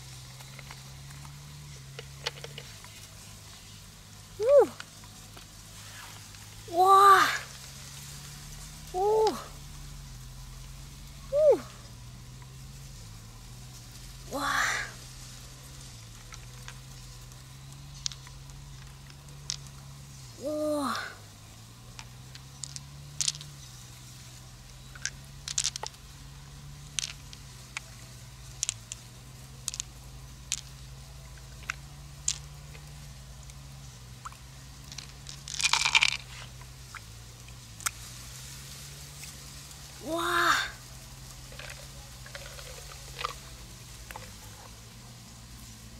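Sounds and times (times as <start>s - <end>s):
low steady hum: 0.0s - 45.9s.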